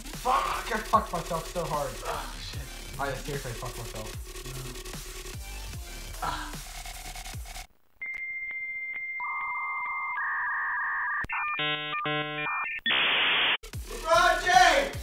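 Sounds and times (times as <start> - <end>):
background music: 0.0 - 7.7, 13.6 - 15.0.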